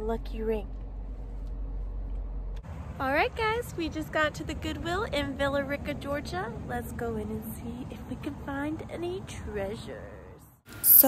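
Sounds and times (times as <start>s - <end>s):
car engine idling: 0.0s - 2.6s
outdoor background noise: 0.0s - 11.0s.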